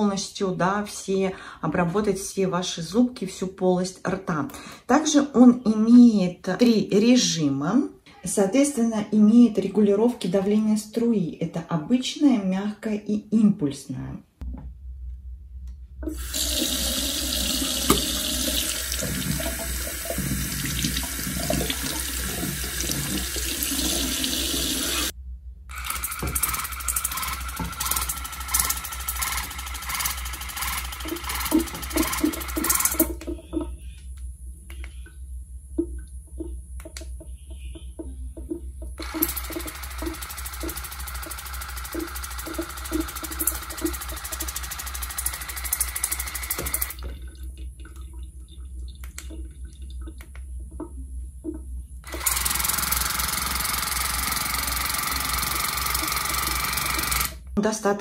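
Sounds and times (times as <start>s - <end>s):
small pump humming: 16.0s - 25.1s, 25.7s - 57.6s
water jet spraying into sink: 16.1s - 25.1s, 39.0s - 47.0s.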